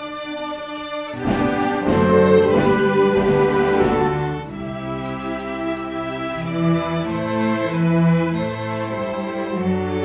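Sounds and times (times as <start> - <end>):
accented orchestral chords: 0.0 - 10.0
orchestra playing: 0.0 - 10.0.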